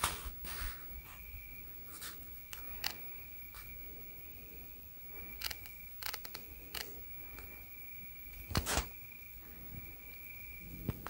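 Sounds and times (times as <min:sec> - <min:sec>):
high-pitched insect trill: 0:00.7 - 0:10.9.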